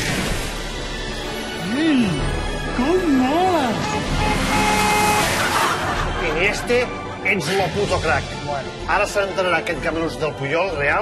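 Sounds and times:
sustained music: 0.0 - 11.0.

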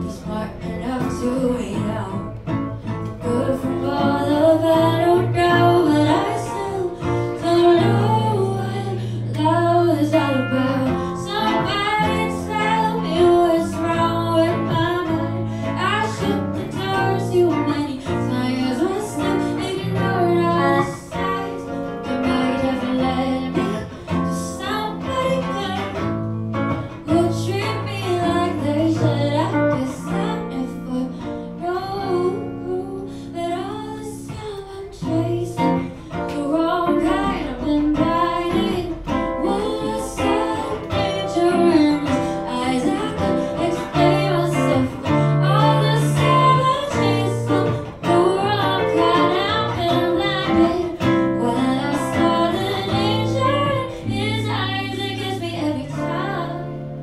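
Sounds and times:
ukulele playing: 0.0 - 57.0
woman singing into microphone: 0.0 - 57.0.

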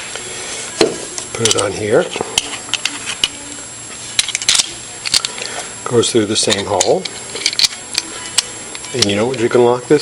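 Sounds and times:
metal parts scraping: 7.1 - 9.4.

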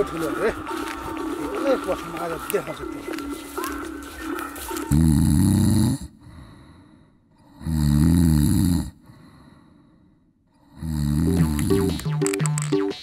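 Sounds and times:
man snoring loudly: 4.9 - 6.2, 7.5 - 9.0, 10.6 - 11.9.

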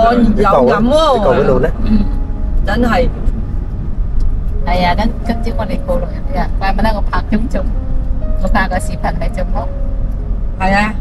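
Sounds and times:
vehicle rumble: 0.0 - 11.0
wind on the road: 0.0 - 11.0.

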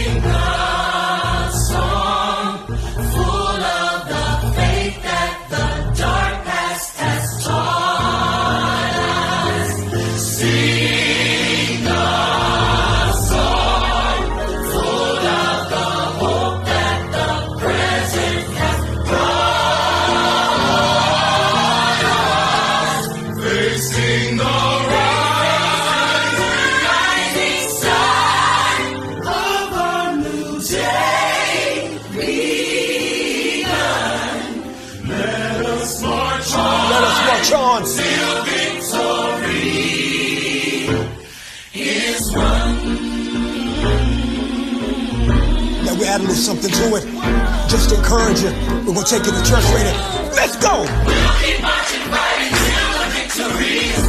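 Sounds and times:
gospel choir singing: 0.0 - 54.0
instrumental accompaniment: 41.8 - 54.0.

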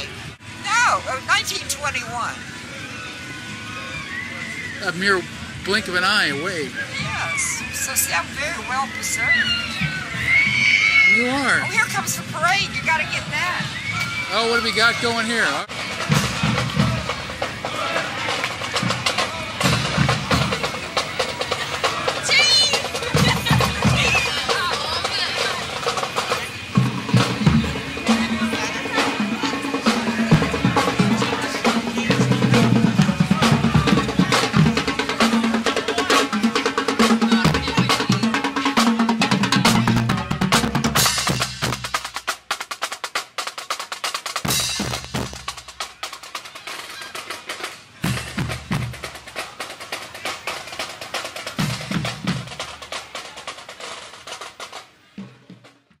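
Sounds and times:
snare drums: 4.8 - 56.0
bass drums: 5.6 - 46.4, 48.0 - 49.6, 50.8 - 53.3.

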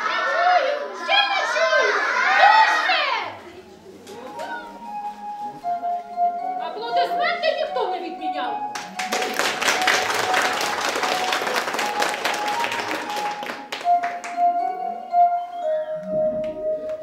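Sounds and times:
background music with held note: 4.1 - 17.0
hands clapping: 8.7 - 14.8, 16.0 - 17.0.

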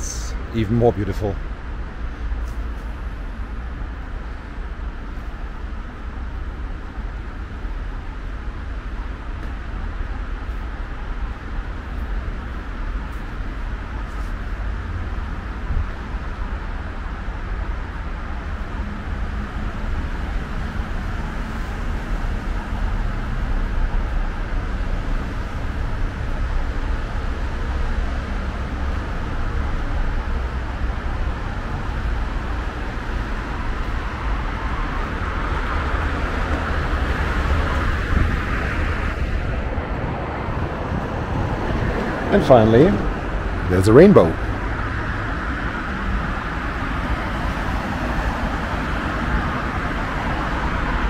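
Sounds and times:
road traffic rush and rumble: 0.0 - 51.0.

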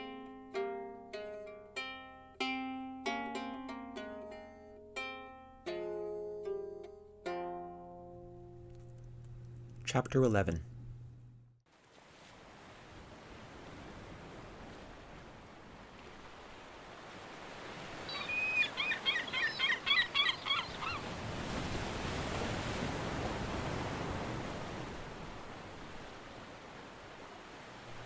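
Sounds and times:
waves washing: 11.7 - 28.0.

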